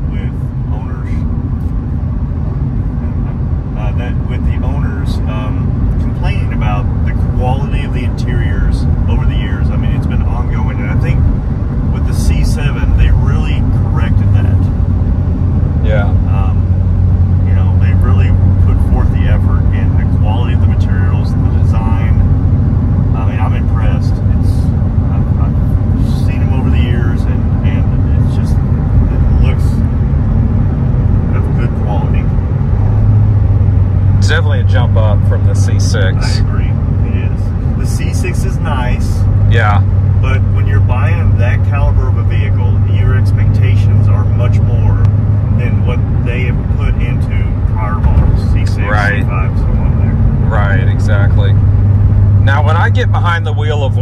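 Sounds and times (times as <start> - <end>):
car engine drone in cabin: 0.0 - 54.0
road noise: 0.0 - 54.0.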